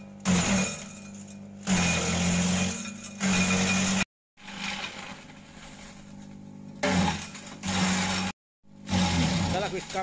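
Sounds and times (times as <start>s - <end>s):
shredder motor hum: 1.6s - 5.3s, 6.4s - 10.0s
loud chopping of branches: 6.8s - 7.8s.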